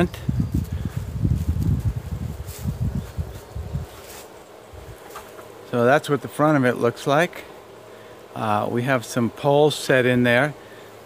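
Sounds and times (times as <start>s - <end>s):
wind buffeting microphone: 0.0s - 4.0s.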